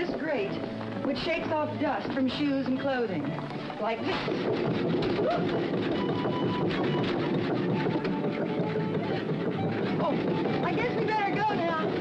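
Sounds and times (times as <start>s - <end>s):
vibrating floor grate rattling: 0.0s - 12.0s.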